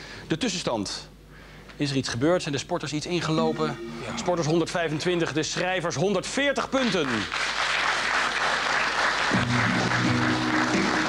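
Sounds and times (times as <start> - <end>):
show music: 3.4 - 4.6, 9.3 - 11.0
audience applauding: 6.8 - 11.0.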